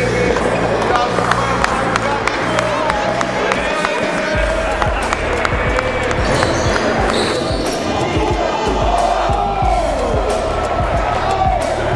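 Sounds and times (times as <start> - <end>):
people shouting: 6.0 - 11.9
shoe squeaks: 6.2 - 7.9.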